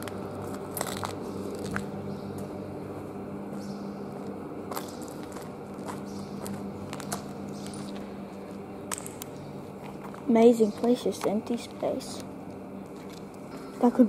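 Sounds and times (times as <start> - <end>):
footsteps on gritty concrete: 0.0 - 11.8, 12.8 - 13.9
steady low hum: 0.0 - 14.0.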